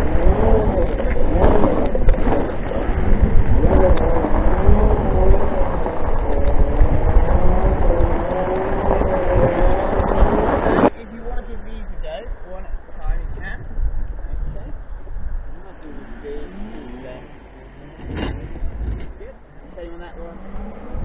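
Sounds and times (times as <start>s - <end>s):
wind rumble: 0.0s - 21.0s.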